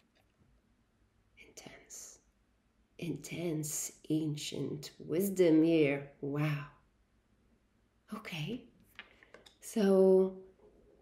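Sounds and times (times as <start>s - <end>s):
woman whispering: 1.4s - 2.2s.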